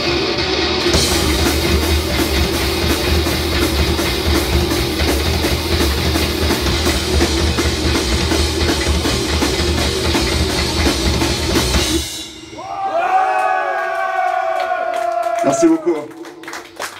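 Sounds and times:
live metal band: 0.0s - 13.4s
fast drum and cymbal hits: 0.8s - 12.7s.

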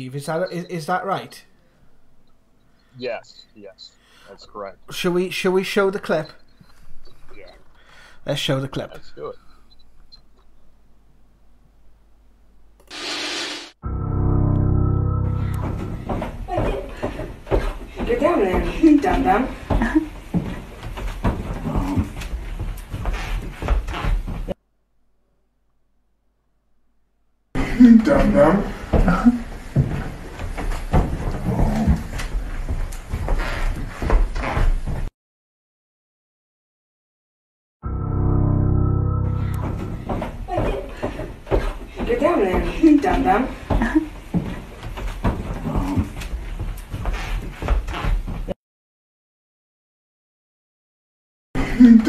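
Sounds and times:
loud burst of hiss: 12.9s - 13.8s
bass-heavy music: 13.8s - 16.1s, 37.8s - 39.9s
low thumps and knocks: 15.4s - 24.5s, 39.4s - 48.4s.

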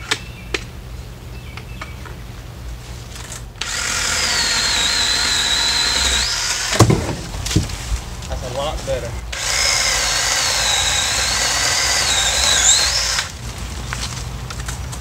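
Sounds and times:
pole saw whining: 3.6s - 7.0s, 9.2s - 13.4s.

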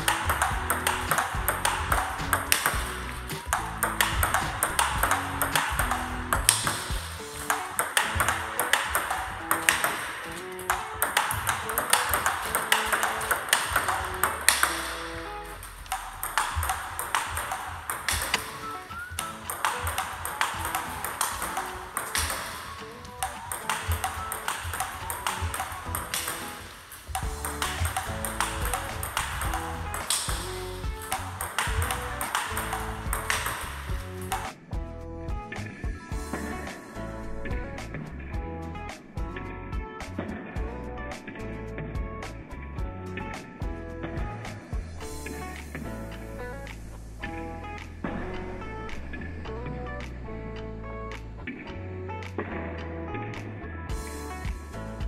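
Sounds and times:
balls bouncing on table: 0.0s - 34.6s
table tennis balls clicking on paddles: 0.0s - 34.6s
background music: 0.0s - 55.0s.

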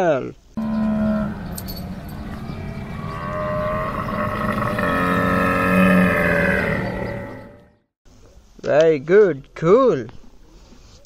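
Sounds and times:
camel calling: 0.6s - 7.7s.

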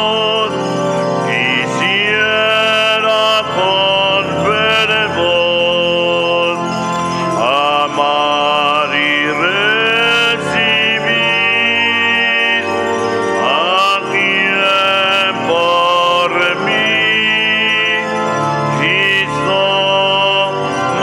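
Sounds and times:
voices singing a slow hymn: 1.3s - 6.6s, 7.4s - 18.2s, 18.8s - 21.0s.

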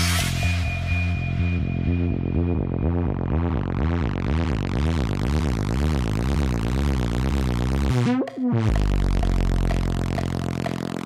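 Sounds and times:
low synth bass note: 0.0s - 11.0s.

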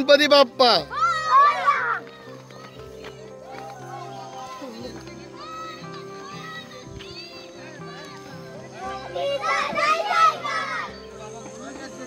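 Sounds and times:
faint background music: 0.0s - 12.0s
children shouting: 0.9s - 6.8s, 7.5s - 11.1s.

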